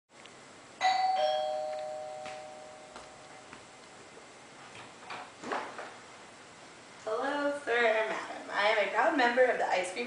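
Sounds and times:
doorbell chime ding-dong: 0.8 - 3.4.

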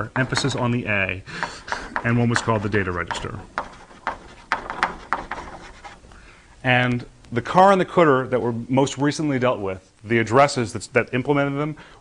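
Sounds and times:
chalk scratching on blackboard: 1.4 - 6.1.

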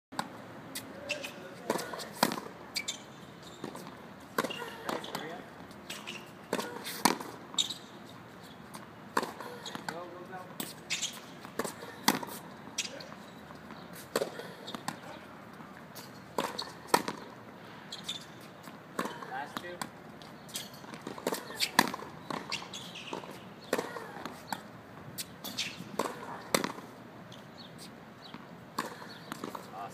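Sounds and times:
tennis balls struck by rackets: 0.2 - 3.0, 3.6 - 7.8, 8.7 - 17.4, 18.6 - 27.0, 28.2 - 29.9
tennis balls bouncing on hard court: 0.2 - 7.9, 8.7 - 17.4, 18.0 - 29.9.

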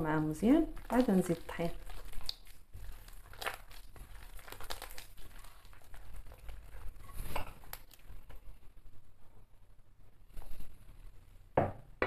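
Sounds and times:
hand squishing dough mixture: 0.0 - 11.4.

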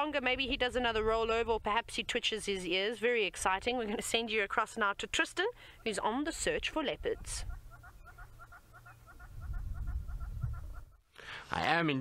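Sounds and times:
bird chirping rapidly: 7.0 - 11.0.

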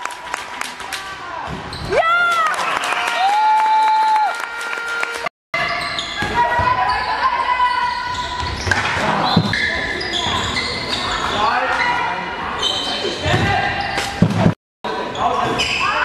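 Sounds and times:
shoes squeaking on floor: 5.6 - 14.5, 15.2 - 16.0.

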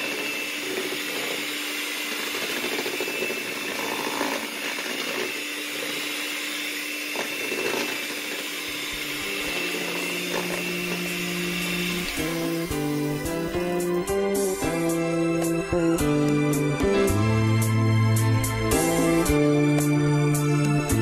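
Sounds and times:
electric hand mixer whipping cream: 0.0 - 21.0.

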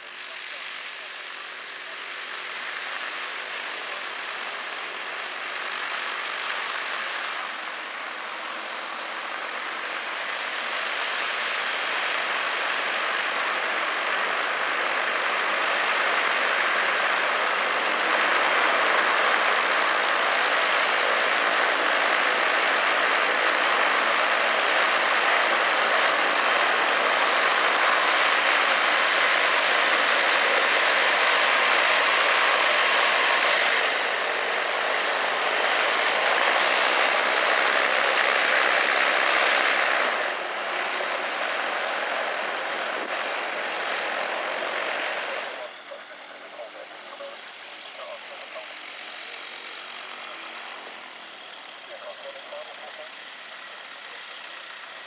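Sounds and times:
light aircraft engine and propeller: 0.0 - 55.0.

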